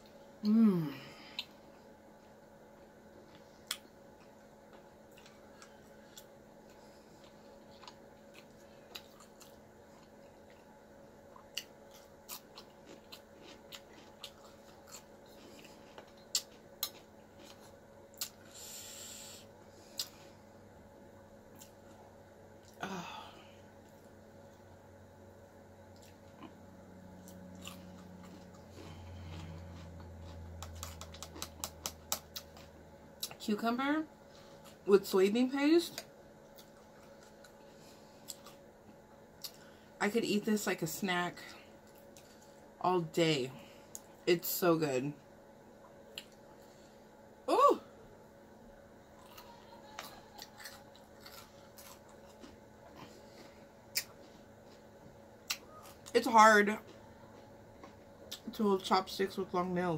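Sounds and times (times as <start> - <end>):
low steady hum: 0.0 - 59.9
person chewing: 1.2 - 20.5, 21.5 - 22.8, 25.9 - 33.4, 36.0 - 39.8, 41.8 - 42.7, 45.8 - 46.8, 49.2 - 56.2, 56.8 - 58.5.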